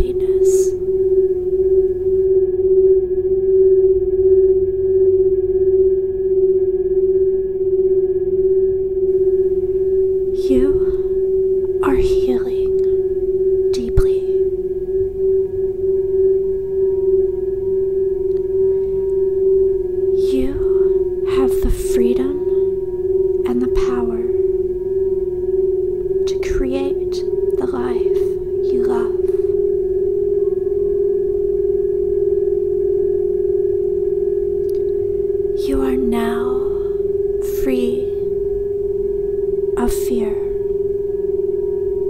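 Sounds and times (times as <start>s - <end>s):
soft breathy voice: 0.0s - 0.8s, 10.4s - 11.2s, 20.2s - 22.7s, 35.6s - 38.3s
faint higher overtone: 0.0s - 42.0s
singing bowls steady tone: 0.0s - 42.0s.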